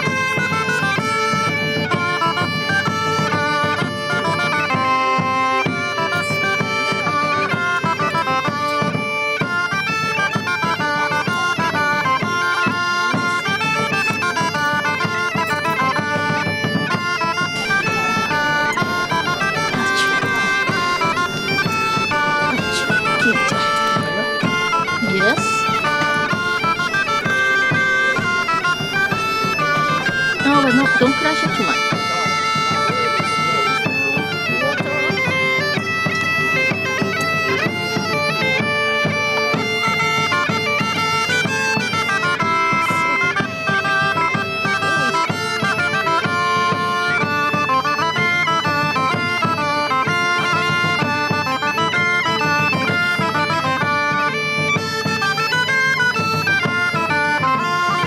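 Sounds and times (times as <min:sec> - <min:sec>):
bagpipe music: 0:00.0 - 0:58.0.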